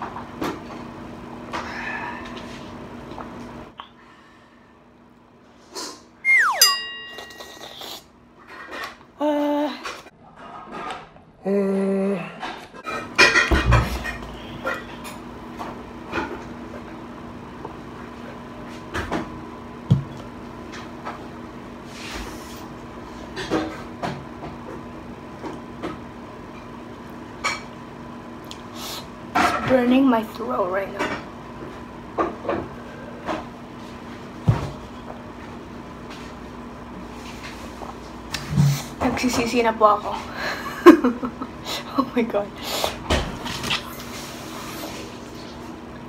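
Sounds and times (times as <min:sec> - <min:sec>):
falling tone: 0:06.2 - 0:07.4
glass bottle and dishes clinking: 0:06.6 - 0:07.7
person humming: 0:09.2 - 0:09.9, 0:11.4 - 0:12.4.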